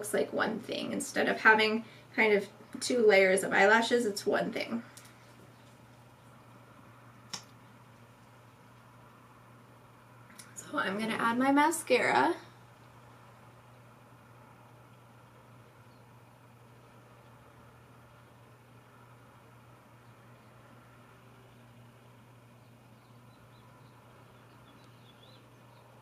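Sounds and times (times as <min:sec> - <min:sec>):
faint low hum: 0:00.0 - 0:26.0.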